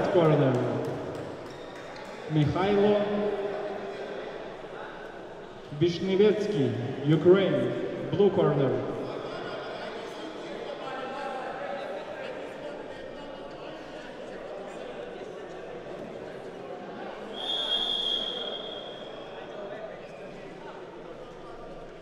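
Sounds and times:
indistinct chatter in hall: 0.0 - 22.0
referee whistle blown: 17.4 - 19.3.

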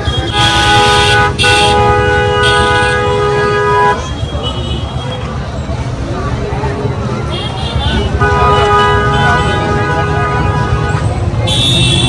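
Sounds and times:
two-tone vehicle horn honking: 0.0 - 4.9, 7.3 - 12.0.

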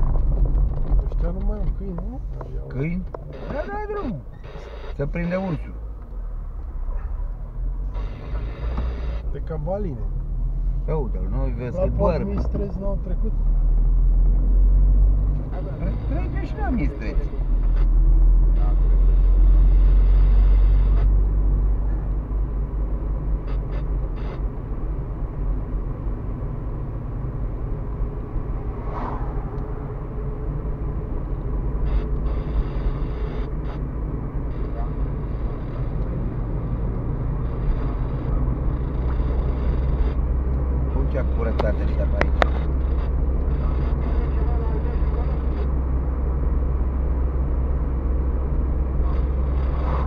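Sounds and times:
car engine and tyres rumbling: 0.0 - 50.0
road noise: 0.0 - 50.0.

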